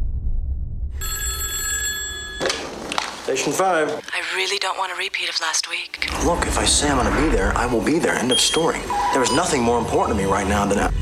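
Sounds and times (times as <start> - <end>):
deep low rumble: 0.0 - 1.0, 6.0 - 8.0
telephone ringing: 1.0 - 2.8.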